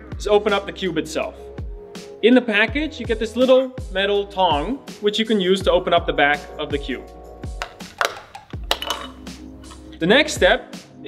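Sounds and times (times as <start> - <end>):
background music with beat: 0.0 - 11.0
plastic cover prying click: 7.6 - 9.2.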